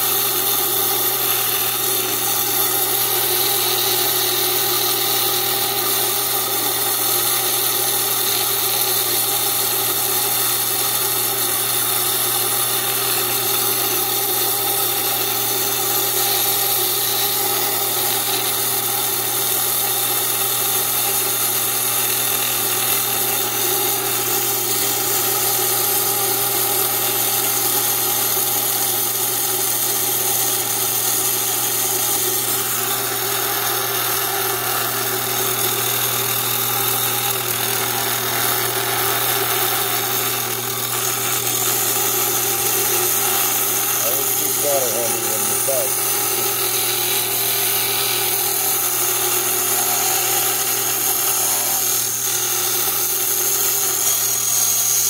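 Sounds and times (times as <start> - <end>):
wet saw cutting stone: 0.0 - 55.0.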